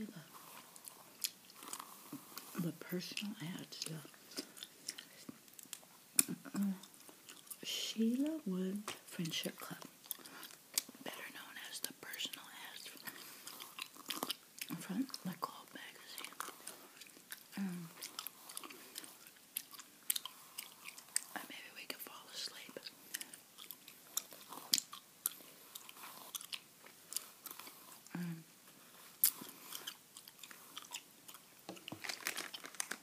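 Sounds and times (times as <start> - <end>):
gum chewing mouth clicks: 0.6 - 3.2, 3.8 - 7.6, 9.8 - 11.0, 11.8 - 15.4, 16.1 - 21.4, 22.8 - 28.2, 29.2 - 32.0.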